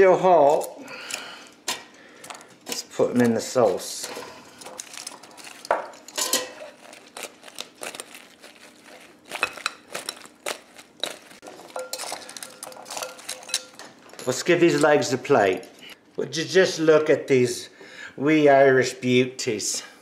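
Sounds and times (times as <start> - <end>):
glass bowl clinking on stone: 11.7 - 14.8.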